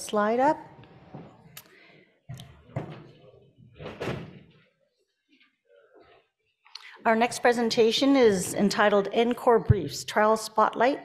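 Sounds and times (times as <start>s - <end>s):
thump: 3.8s - 4.5s.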